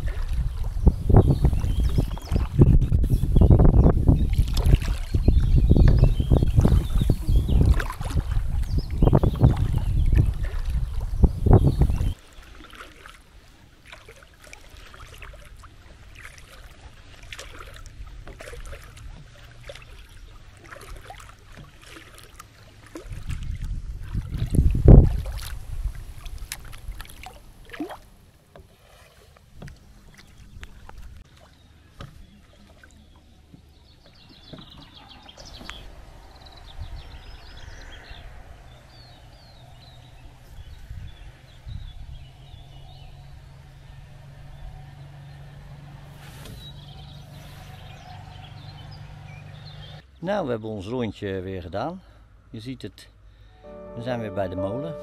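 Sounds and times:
small water splashes: 0.0s - 2.7s, 3.9s - 50.0s
wind rumble on microphone: 0.0s - 12.2s, 23.0s - 27.6s, 34.2s - 50.0s
paddle dipping and dripping: 0.0s - 44.4s, 53.3s - 55.0s.

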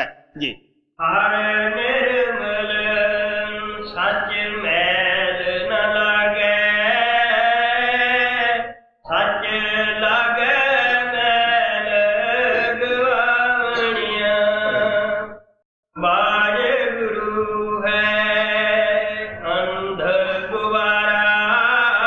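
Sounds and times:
man chanting: 0.0s - 15.4s, 16.0s - 22.0s.

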